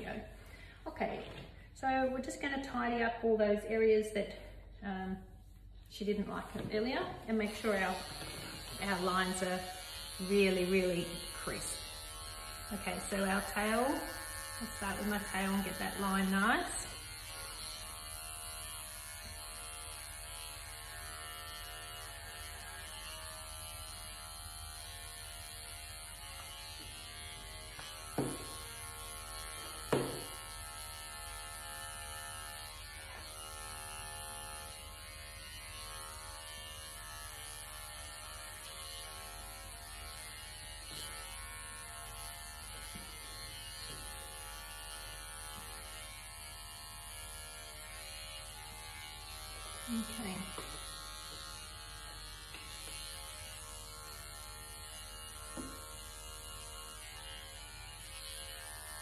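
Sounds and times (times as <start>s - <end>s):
electric pet clippers buzzing: 0.0s - 59.0s.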